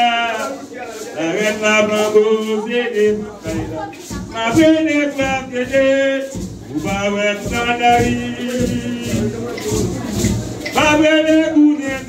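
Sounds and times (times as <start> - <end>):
man singing long notes: 0.0 - 9.7.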